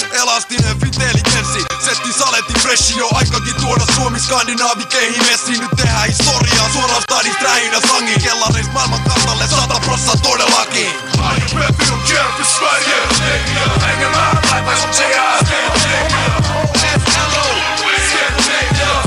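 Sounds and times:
man rapping over a beat: 0:00.0 - 0:19.0
deep bass line: 0:00.6 - 0:01.8, 0:02.5 - 0:04.4, 0:05.8 - 0:07.1, 0:08.5 - 0:10.4, 0:11.2 - 0:19.0.

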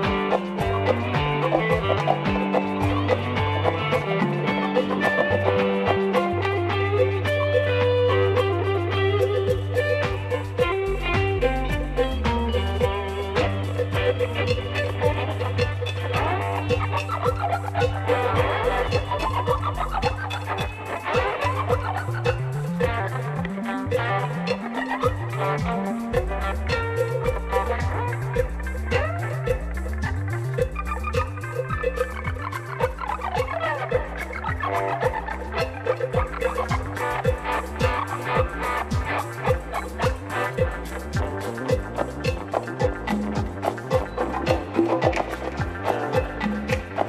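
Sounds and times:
electric guitar: 0:00.0 - 0:47.0
rock band music: 0:00.0 - 0:47.0
sustained bass line: 0:05.3 - 0:47.0
kick drum beat: 0:09.5 - 0:17.4.

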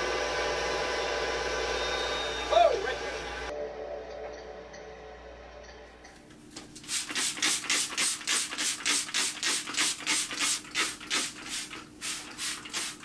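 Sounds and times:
spray bottle hisses: 0:06.8 - 0:13.0.

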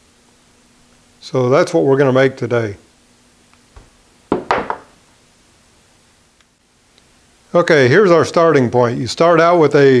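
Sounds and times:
metal parts knocking on wooden bench: 0:04.3 - 0:05.0.

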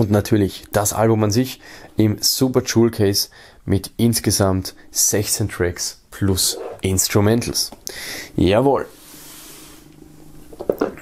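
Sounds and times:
cloth sliding on wooden table: 0:06.5 - 0:06.8.

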